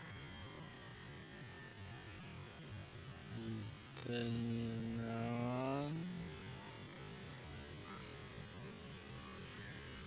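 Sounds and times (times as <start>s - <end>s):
man humming: 3.3s - 6.3s.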